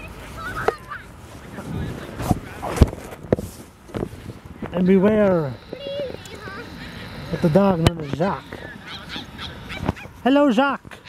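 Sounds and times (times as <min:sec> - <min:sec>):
footsteps crunching in snow: 0:00.0 - 0:10.3.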